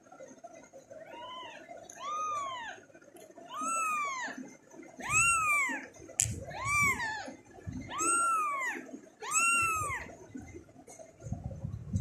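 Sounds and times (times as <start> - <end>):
kitten mewing: 3.5 - 4.3, 5.0 - 5.8, 6.4 - 7.3, 7.9 - 10.1.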